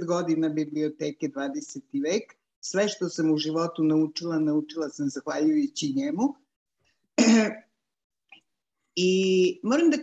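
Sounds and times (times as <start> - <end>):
woman clearing her throat: 7.2 - 7.7.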